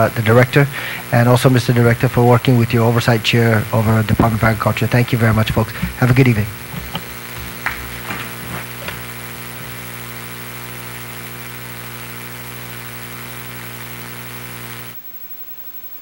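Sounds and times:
electrical hum and buzz: 0.0s - 16.0s.

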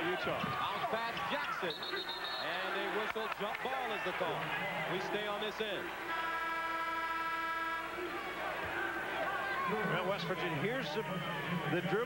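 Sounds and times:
arena horn steady tone: 6.0s - 8.5s.

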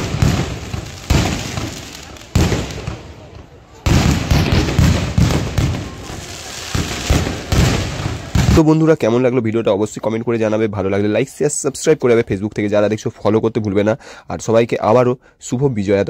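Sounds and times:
fireworks bangs: 0.0s - 8.8s.

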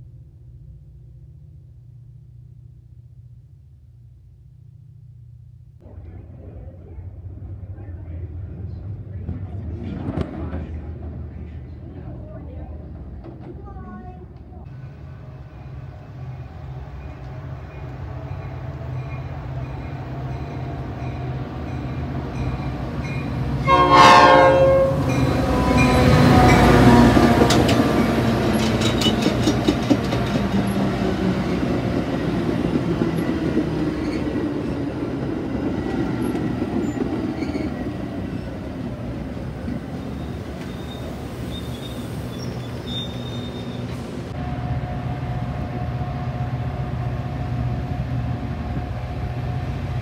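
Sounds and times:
diesel locomotive engine hum: 0.0s - 50.0s
train coaches rolling rumble: 5.8s - 50.0s
train horn blast: 23.6s - 27.5s.

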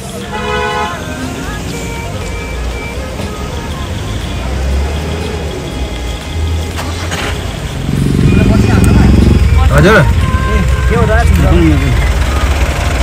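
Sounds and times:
car engine rumbling: 0.0s - 13.0s
crowd chatter: 0.0s - 13.0s
music or voices: 0.0s - 13.0s.

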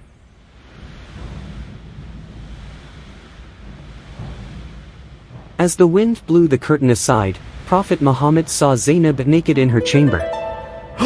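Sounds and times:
wind blowing: 0.5s - 11.0s.

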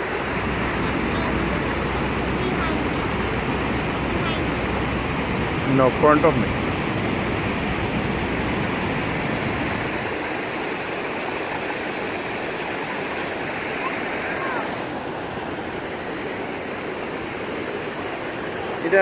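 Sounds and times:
river water rushing over rocks: 0.0s - 19.0s.

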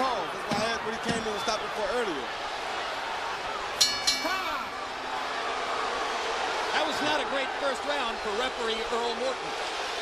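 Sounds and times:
boxing ring bell ringing: 3.8s - 5.2s.

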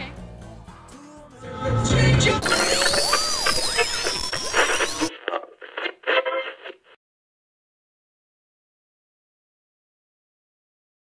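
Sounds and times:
harsh static with warbling tones: 2.3s - 7.0s
muffled stuttering bursts: 2.4s - 6.9s.

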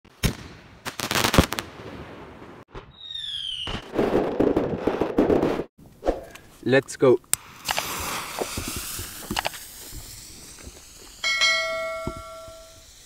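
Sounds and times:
fireworks bangs: 0.1s - 5.7s, 7.4s - 13.0s
crackling firework pops: 2.6s - 5.7s, 7.4s - 11.4s
falling firework whistle: 2.8s - 4.0s, 7.8s - 13.0s.

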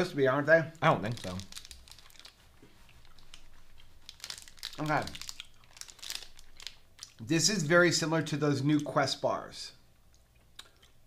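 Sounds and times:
foil wrapper crinkling: 0.8s - 7.7s.

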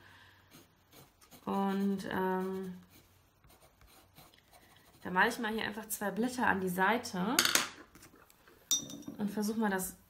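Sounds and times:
pencil scratching on paper: 0.4s - 5.9s.

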